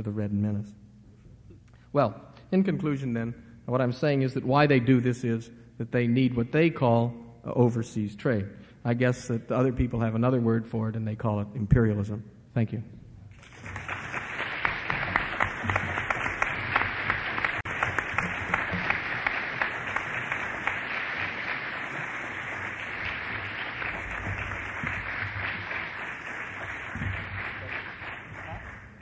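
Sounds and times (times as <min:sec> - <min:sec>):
audience applauding: 0:13.4 - 0:29.0.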